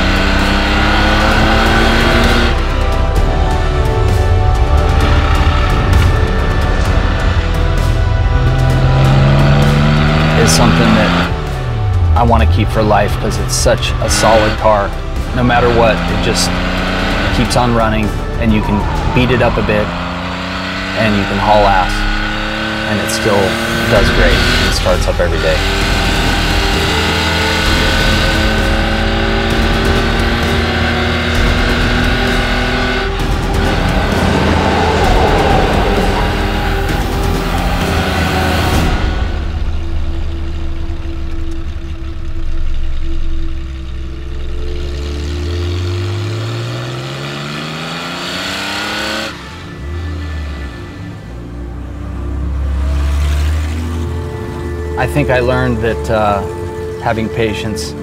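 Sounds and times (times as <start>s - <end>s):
car engine revving: 0.0s - 58.0s
music score: 0.0s - 58.0s.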